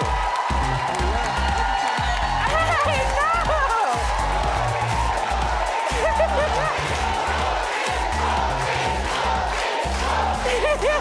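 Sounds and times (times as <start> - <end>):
audience cheering and clapping: 0.0 - 11.0.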